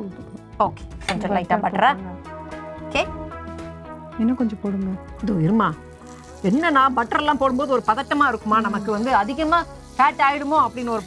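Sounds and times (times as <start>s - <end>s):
butter sizzling on a hot pan: 5.2s - 11.0s
woman speaking: 6.4s - 11.0s.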